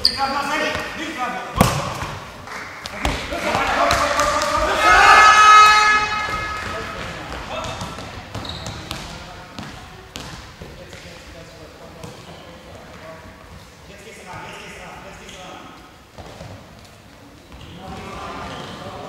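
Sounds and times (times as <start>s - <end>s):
handball bouncing on floor: 1.6s - 2.2s, 6.3s - 11.0s
voices shouting: 3.3s - 7.7s.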